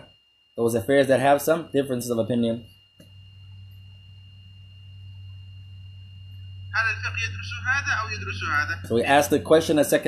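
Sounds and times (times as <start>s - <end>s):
steady low hum: 0.0s - 10.0s
thin high-pitched whine: 0.0s - 10.0s.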